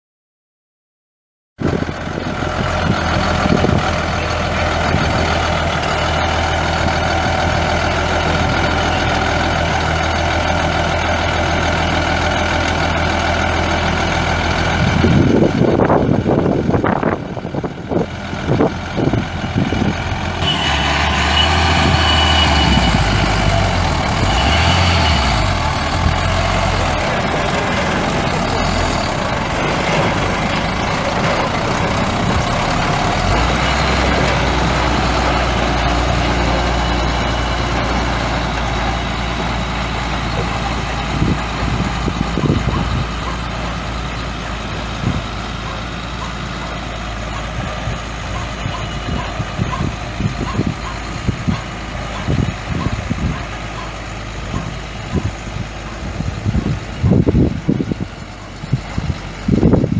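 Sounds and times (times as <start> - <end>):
diesel truck engine running: 1.6 - 59.9.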